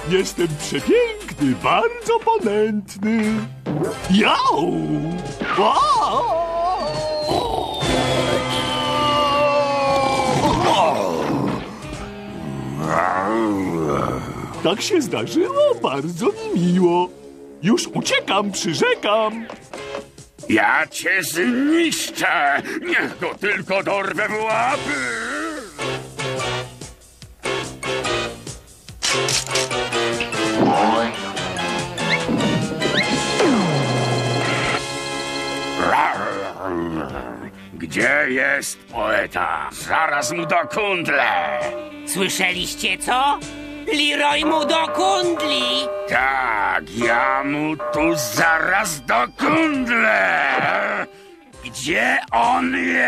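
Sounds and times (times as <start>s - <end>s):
background music: 0.0s - 53.0s
cartoon dog angry roar: 7.2s - 11.7s, 12.4s - 14.6s, 35.8s - 37.5s, 41.1s - 41.8s.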